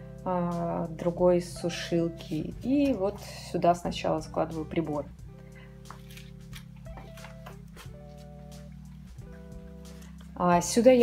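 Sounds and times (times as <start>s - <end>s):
soft background music chords: 0.0s - 11.0s.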